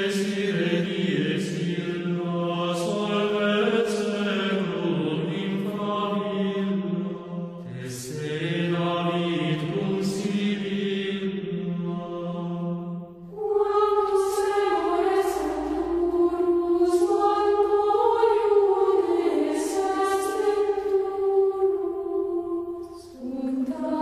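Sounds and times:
choir chanting: 0:00.0 - 0:24.0.

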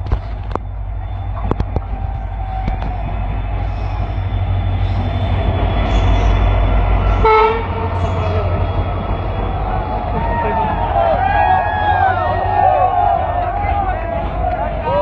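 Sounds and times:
diesel train rumbling past: 0:00.0 - 0:15.0
train horn note: 0:07.1 - 0:08.5.

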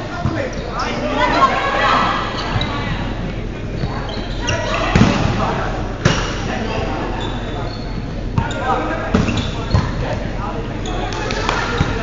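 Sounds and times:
players talking and calling out: 0:00.0 - 0:12.0.

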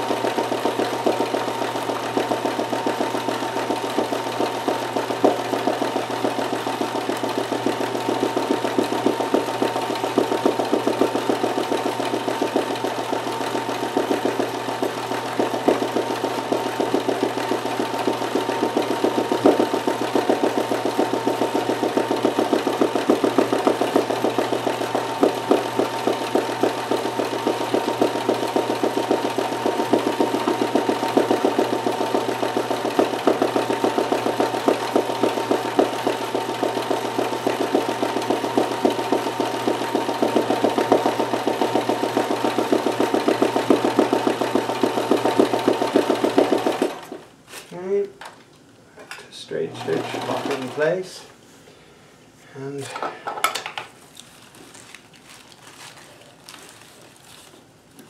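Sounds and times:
sewing machine motor whine: 0:00.0 - 0:47.2, 0:49.5 - 0:51.0.

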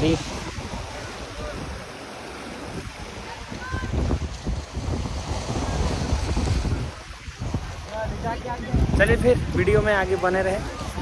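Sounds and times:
sea waves washing: 0:00.0 - 0:11.0
wind buffeting microphone: 0:00.0 - 0:11.0
faint voices of people: 0:00.4 - 0:11.0.

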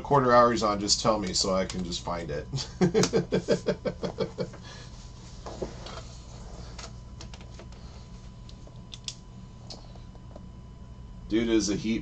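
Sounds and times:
low electrical hum: 0:00.0 - 0:12.0
man laughing: 0:02.5 - 0:04.9.

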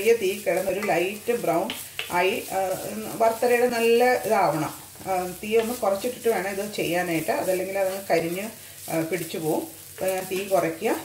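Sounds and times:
coconut sizzling in a frying pan: 0:00.0 - 0:11.0
person speaking: 0:00.0 - 0:11.0.

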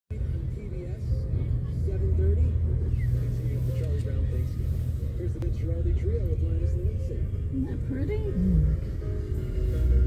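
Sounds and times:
slow car traffic rumble: 0:00.1 - 0:10.0.

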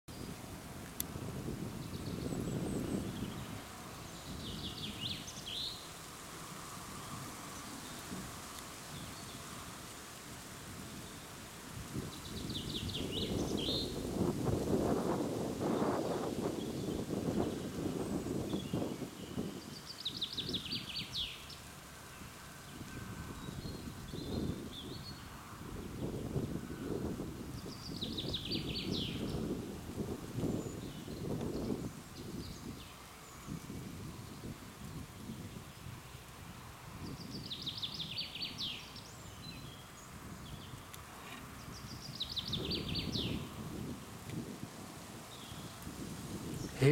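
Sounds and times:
wind rumbling on microphone: 0:00.1 - 0:46.9
songbird singing: 0:01.0 - 0:06.0, 0:06.6 - 0:09.6, 0:10.9 - 0:36.3, 0:37.0 - 0:44.5, 0:45.2 - 0:46.9.

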